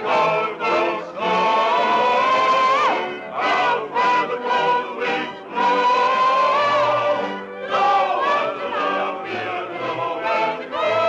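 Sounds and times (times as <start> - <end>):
chorus singing: 0.0 - 11.0.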